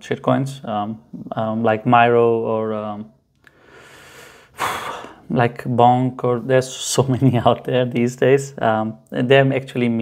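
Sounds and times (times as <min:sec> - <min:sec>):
man breathing: 0:03.4 - 0:05.3
quick intake of breath: 0:03.5 - 0:05.2.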